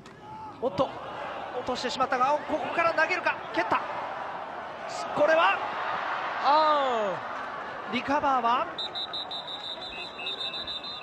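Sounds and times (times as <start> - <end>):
lower-pitched whistle: 8.8 - 11.0.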